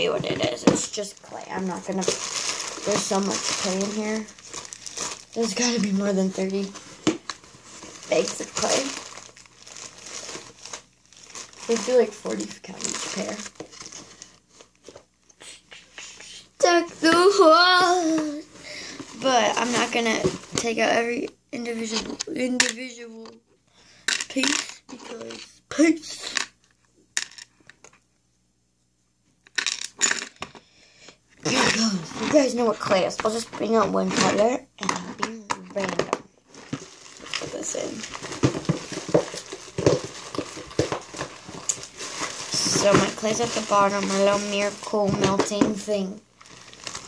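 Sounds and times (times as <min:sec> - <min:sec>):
plastic packets crinkling: 0:00.0 - 0:15.0, 0:17.8 - 0:20.8, 0:31.5 - 0:47.0.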